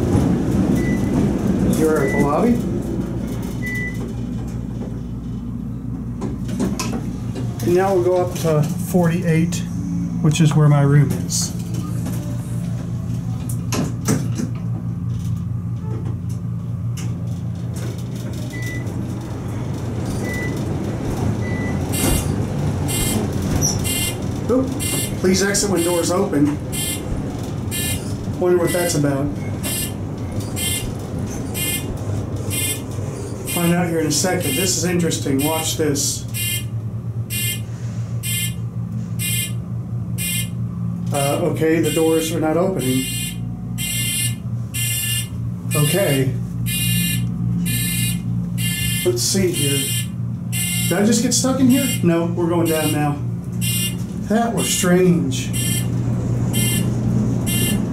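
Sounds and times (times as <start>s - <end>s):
elevator hum and travel noise: 0.0s - 57.9s
elevator buzzer pulses: 21.4s - 25.3s, 26.7s - 28.1s, 28.7s - 32.9s, 36.3s - 40.8s, 41.8s - 54.1s, 55.5s - 57.9s
buzzing signal: 32.5s - 32.8s, 37.3s - 38.6s, 39.2s - 39.6s, 40.2s - 40.6s, 43.0s - 51.1s, 53.6s - 54.0s, 55.5s - 57.9s.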